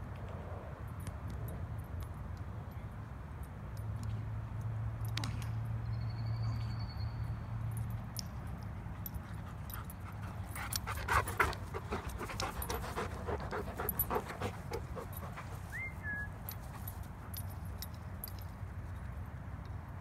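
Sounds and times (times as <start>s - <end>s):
dog panting: 8.9s - 17.4s.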